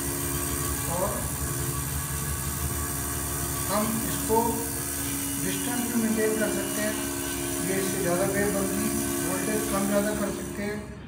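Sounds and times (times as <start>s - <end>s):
tuning fork buzzing steadily: 0.0s - 10.4s.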